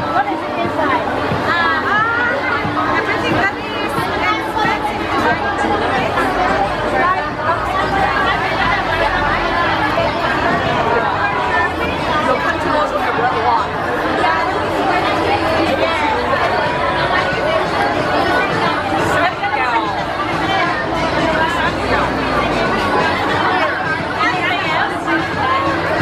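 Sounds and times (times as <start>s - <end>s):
crowd chatting: 0.0s - 26.0s.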